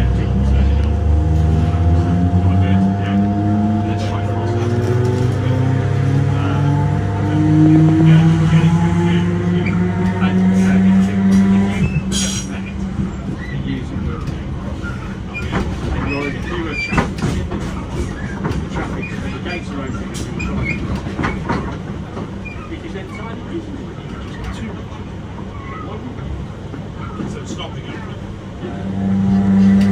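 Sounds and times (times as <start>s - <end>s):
train low hum: 0.0s - 29.9s.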